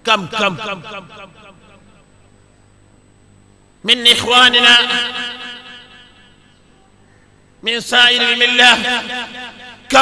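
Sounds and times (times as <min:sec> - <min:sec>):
faint background hum: 0:00.0 - 0:10.0
man's drawn-out voice: 0:07.6 - 0:10.0.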